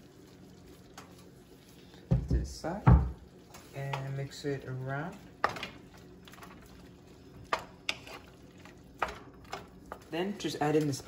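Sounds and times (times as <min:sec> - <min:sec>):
spoon stirring food in pan: 0:00.1 - 0:11.0.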